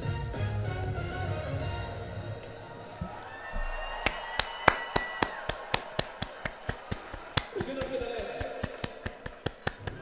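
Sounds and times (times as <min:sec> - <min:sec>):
music: 0:00.0 - 0:03.2
hands clapping in rhythm: 0:04.0 - 0:10.0.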